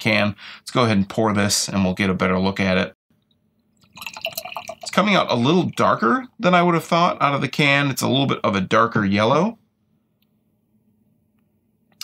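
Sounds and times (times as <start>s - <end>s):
beer pouring into glass: 3.8s - 5.8s.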